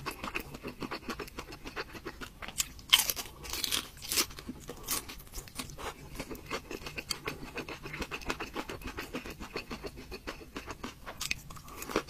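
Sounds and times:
crunchy chewing: 0:00.0 - 0:12.0.

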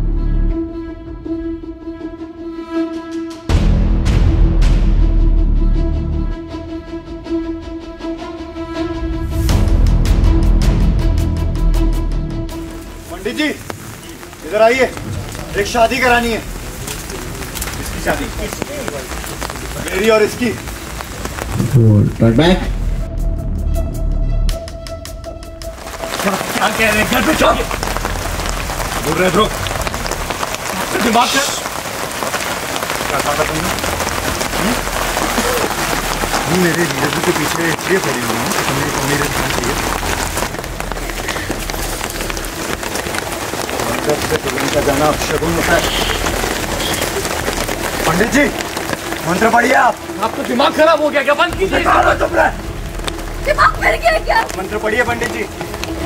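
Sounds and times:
steady rain falling: 0:03.5 - 0:56.0
drops pattering on leaves: 0:12.5 - 0:21.8, 0:25.6 - 0:56.0
voices speaking: 0:33.0 - 0:56.0.

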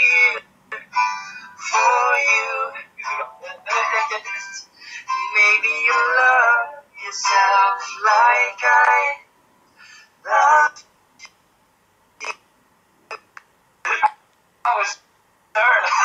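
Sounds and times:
man singing: 0:00.0 - 0:01.0, 0:01.6 - 0:09.2, 0:10.2 - 0:10.8, 0:15.6 - 0:16.0.

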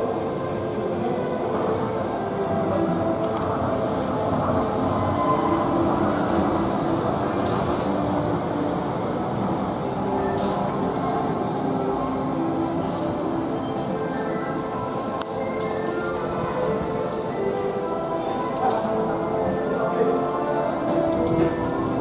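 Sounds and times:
monorail train running: 0:00.0 - 0:22.0.

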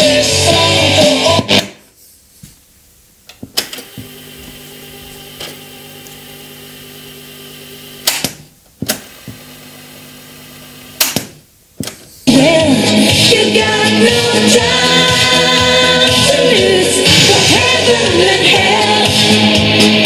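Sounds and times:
music from cassette deck: 0:00.0 - 0:01.8, 0:03.6 - 0:08.3, 0:12.3 - 0:20.0
tape mechanism humming: 0:03.3 - 0:12.0.

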